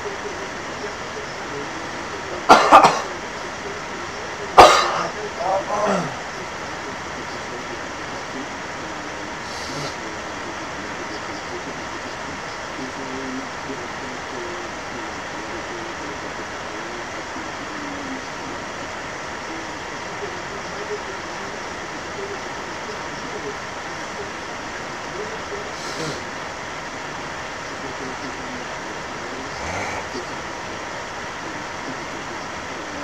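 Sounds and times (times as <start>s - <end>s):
faint indistinct voices: 0.0s - 33.0s
steady hiss: 0.0s - 33.0s.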